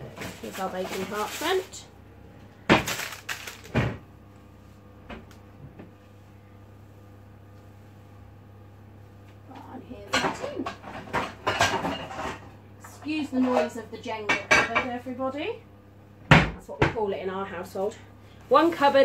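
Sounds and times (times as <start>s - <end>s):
cupboard contents clattering: 0.0s - 1.8s, 2.7s - 4.0s
faint steady hum: 0.0s - 19.0s.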